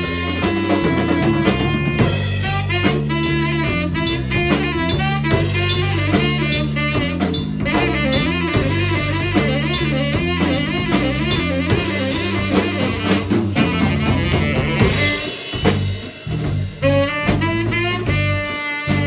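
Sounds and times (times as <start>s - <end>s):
drum kit groove: 0.0s - 19.0s
electric bass figure: 0.0s - 19.0s
saxophone line: 0.0s - 19.0s.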